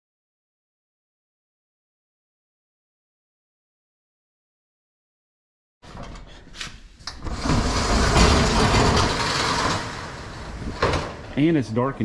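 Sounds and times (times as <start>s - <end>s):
steel roll-up door rolling up: 5.8s - 12.0s.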